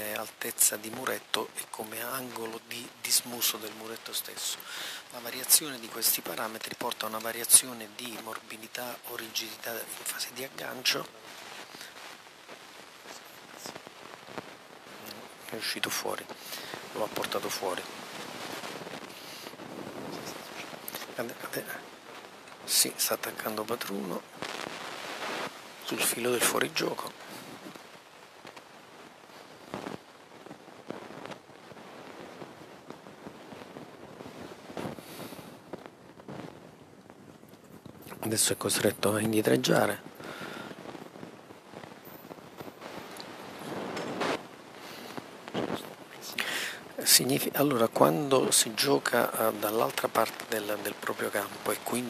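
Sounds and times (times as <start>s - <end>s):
hall background hiss: 0.0s - 52.0s.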